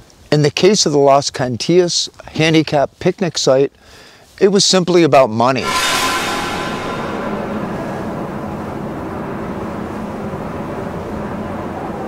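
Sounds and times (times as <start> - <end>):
steady low rumble: 5.6 - 8.7.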